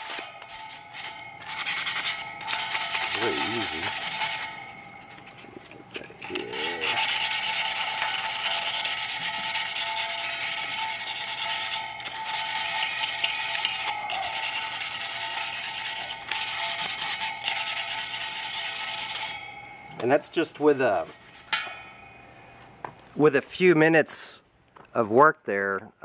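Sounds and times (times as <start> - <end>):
sandpaper scrubbing metal: 0.0 - 22.0.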